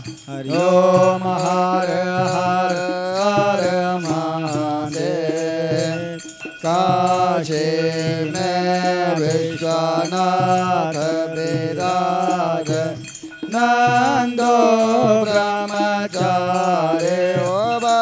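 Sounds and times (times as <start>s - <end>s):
person singing devotional hymn: 0.0s - 18.0s
steady rhythmic beat: 0.0s - 18.0s.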